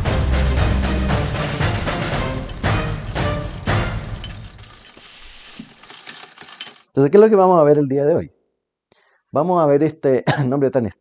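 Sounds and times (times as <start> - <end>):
steam hiss: 0.0 - 4.2, 4.8 - 5.8
mechanical clicks and ratcheting: 0.0 - 6.9.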